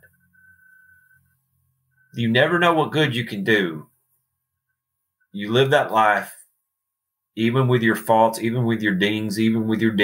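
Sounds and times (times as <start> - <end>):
faint high-pitched tone: 0.0 - 3.8
person speaking: 2.1 - 4.2, 5.3 - 6.6, 7.3 - 10.0.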